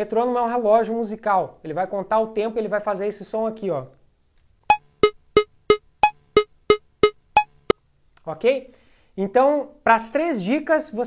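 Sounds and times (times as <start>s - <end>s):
metronome ticking: 4.7s - 7.8s.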